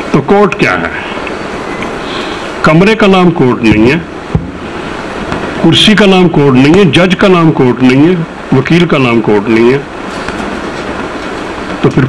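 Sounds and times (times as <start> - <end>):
man talking: 0.0 - 1.2, 2.6 - 4.1, 5.6 - 9.9
steady background hiss: 0.0 - 12.0.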